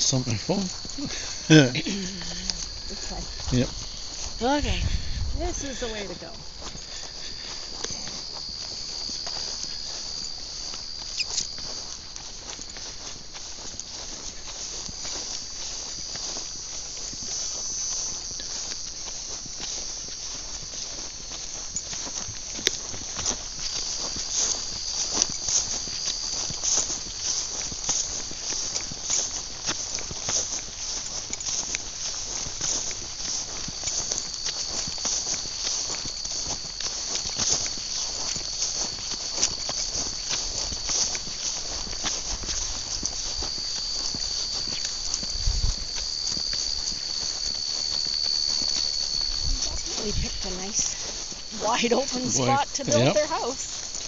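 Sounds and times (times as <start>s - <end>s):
footsteps on grass: 0.0s - 54.0s
insects chorus: 0.0s - 54.0s.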